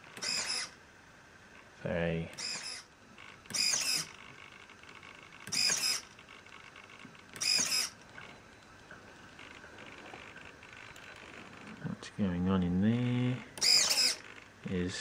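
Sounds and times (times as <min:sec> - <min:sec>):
small servo motor whirring: 0:00.1 - 0:00.8, 0:02.4 - 0:02.9, 0:03.5 - 0:04.2, 0:05.4 - 0:06.1, 0:07.4 - 0:08.0, 0:13.6 - 0:14.4.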